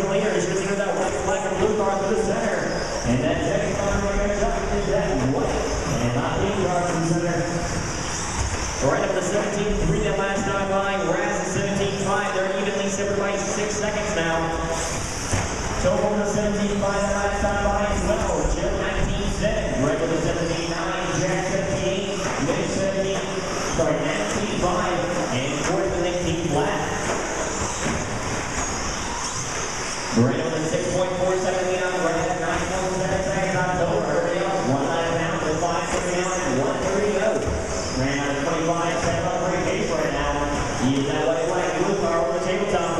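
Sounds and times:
model race trucks whirring: 0:06.9 - 0:08.8, 0:14.0 - 0:16.4, 0:23.2 - 0:33.0
rc truck motors whining: 0:26.8 - 0:30.2.

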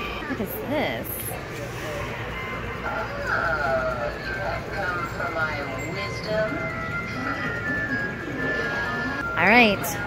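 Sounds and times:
busy store background noise: 0:00.0 - 0:10.0.

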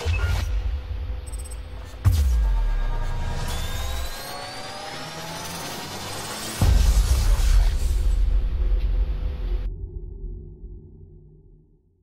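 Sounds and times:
electronic riser sweep: 0:00.0 - 0:09.7.

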